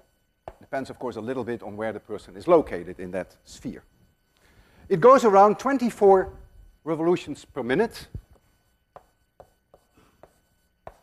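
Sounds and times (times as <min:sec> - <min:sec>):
chalk tapping on blackboard: 0:00.0 - 0:00.7, 0:08.2 - 0:11.0.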